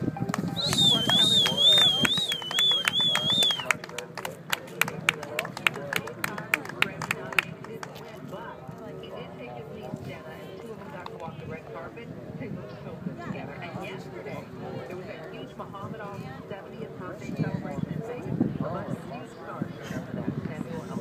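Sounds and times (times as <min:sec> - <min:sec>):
hand claps: 0:00.2 - 0:08.0.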